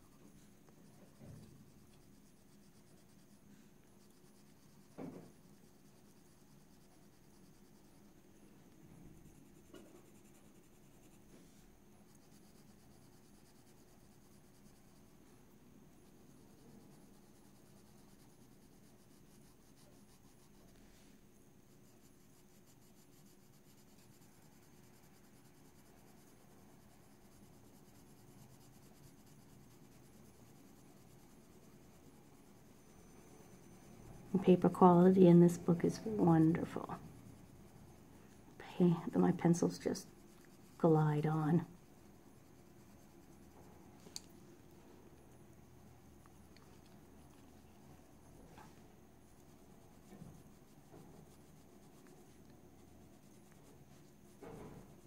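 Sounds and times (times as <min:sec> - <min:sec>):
colored pencil scratching on paper: 0:00.0 - 0:55.0
thump: 0:01.1 - 0:01.6, 0:04.9 - 0:05.4, 0:54.4 - 0:54.9
soft knock: 0:05.0 - 0:05.3.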